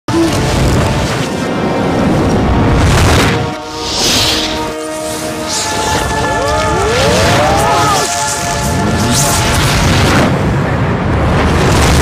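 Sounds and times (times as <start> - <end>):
reversed sustained music chords: 0.2 - 11.0
rising and falling gliding tones: 1.9 - 10.8.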